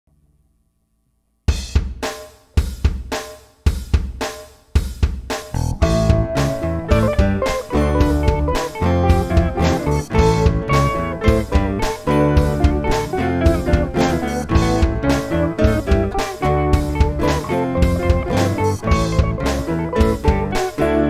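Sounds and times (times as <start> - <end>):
drum kit playing: 1.5 - 21.0
band playing: 5.6 - 21.0.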